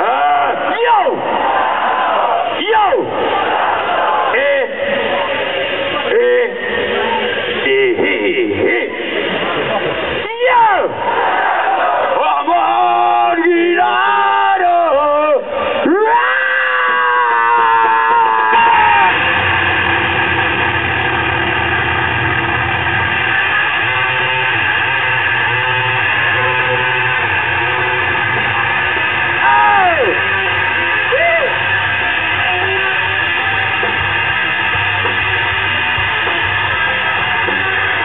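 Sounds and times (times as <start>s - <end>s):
bass guitar: 0.0s - 12.2s, 15.4s - 38.0s
distorted electric guitar: 0.0s - 38.0s.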